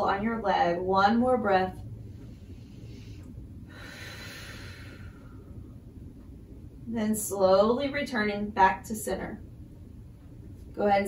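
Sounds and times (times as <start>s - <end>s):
low room hum: 0.0s - 11.0s
person breathing: 2.1s - 5.7s.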